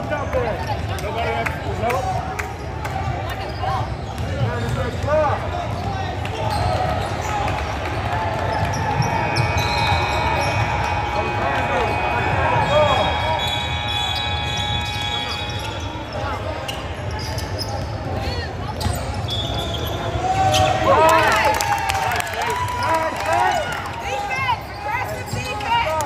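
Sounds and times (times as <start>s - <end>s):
crowd voices chattering: 0.0s - 26.0s
sneakers squeaking: 2.0s - 20.8s, 24.3s - 25.9s
steady high tone: 9.8s - 16.0s.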